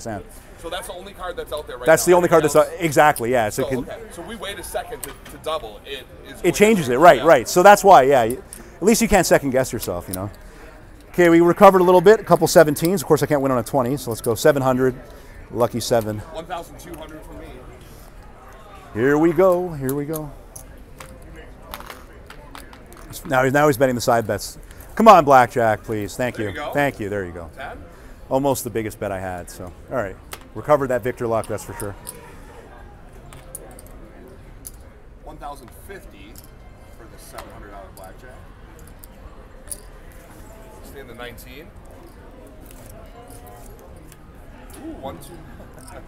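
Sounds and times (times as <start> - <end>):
faint distant voices: 0.0 - 46.0
murmuring voices: 29.8 - 34.8, 38.5 - 46.0.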